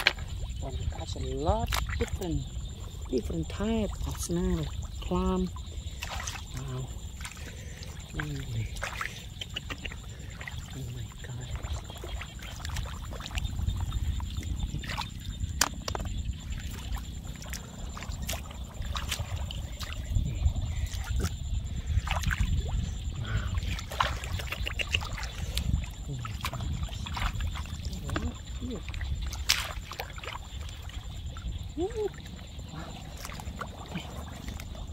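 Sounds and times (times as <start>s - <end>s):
shallow water sloshing and splashing: 0.0s - 34.9s
steady low rumble: 0.0s - 34.9s
short clicks and splats: 23.8s - 25.7s.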